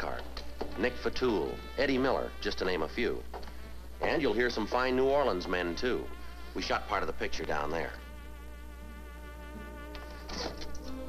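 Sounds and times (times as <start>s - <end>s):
film soundtrack hum: 0.0s - 11.0s
soft sustained background music: 0.0s - 11.0s.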